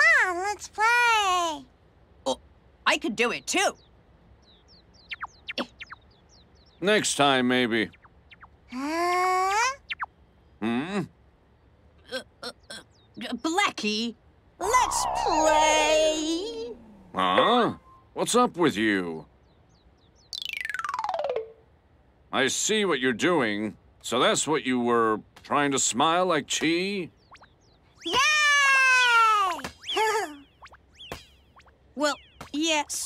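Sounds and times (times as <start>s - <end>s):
small birds chirping: 2.3s - 21.1s, 22.6s - 33.0s
cartoon descending fluttering tone: 14.6s - 18.0s
steeply falling whistles: 14.6s - 18.2s.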